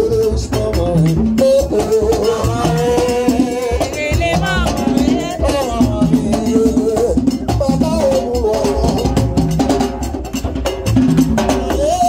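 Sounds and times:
people singing: 0.0s - 10.1s, 11.4s - 12.0s
hand drums rhythm: 0.0s - 12.0s.

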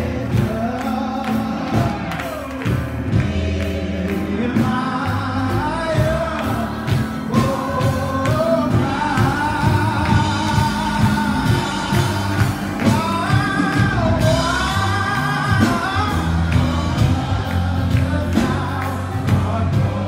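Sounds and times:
band accompaniment with steady beat: 0.0s - 20.0s
gospel choir singing: 0.0s - 20.0s.

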